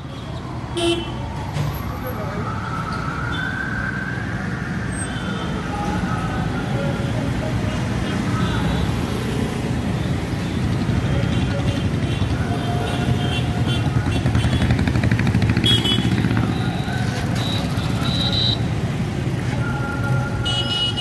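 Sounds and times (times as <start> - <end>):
scooters and cars driving past: 3.4 - 21.0.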